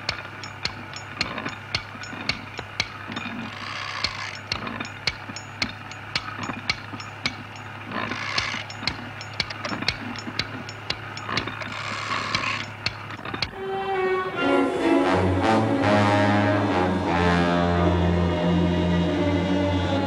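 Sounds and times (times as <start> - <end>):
rapid machine clicking: 0.0 - 13.6
steady low hum: 0.0 - 20.0.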